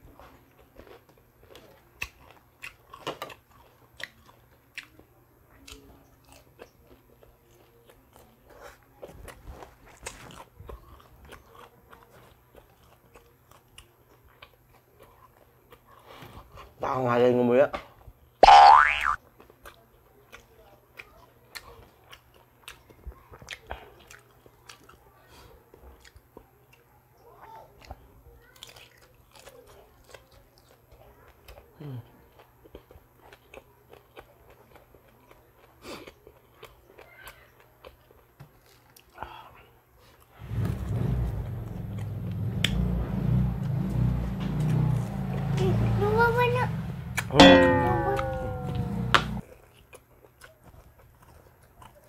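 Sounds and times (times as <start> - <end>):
chewing crunchy food: 0.0 - 16.8, 19.2 - 46.0, 49.4 - 52.0.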